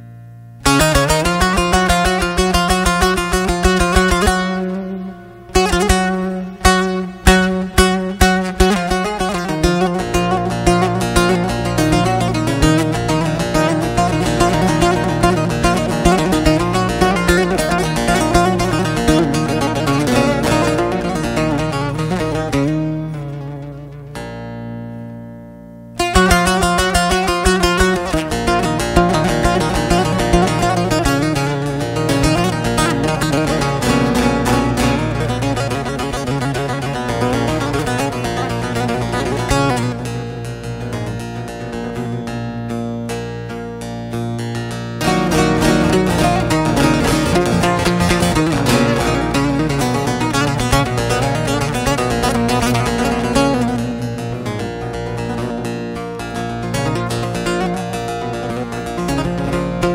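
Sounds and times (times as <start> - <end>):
plucked lute folk music: 0.0 - 59.9.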